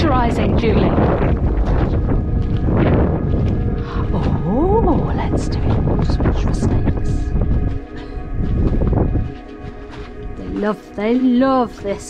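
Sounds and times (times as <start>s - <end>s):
background music: 0.0s - 12.0s
wind buffeting microphone: 0.0s - 12.0s.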